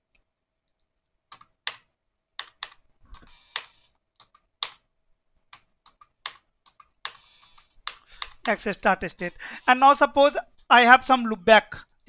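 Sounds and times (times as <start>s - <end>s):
computer keyboard key clicks: 1.3s - 2.8s, 3.5s - 4.9s, 5.5s - 8.6s.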